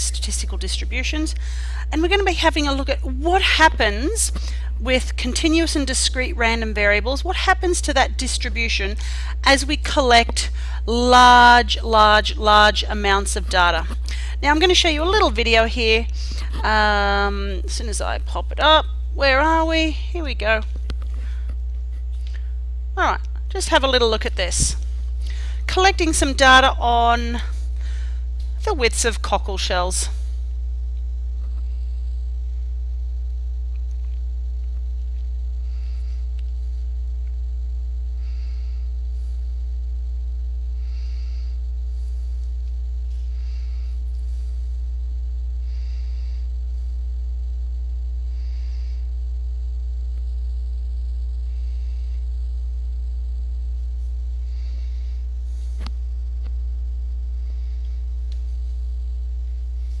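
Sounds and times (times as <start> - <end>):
electrical mains hum: 0.0 - 60.0.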